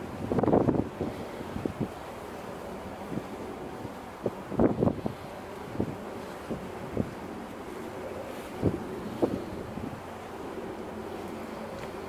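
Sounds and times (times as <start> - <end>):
rush of wind and water: 0.0 - 12.0
wind buffeting the microphone: 0.0 - 12.0.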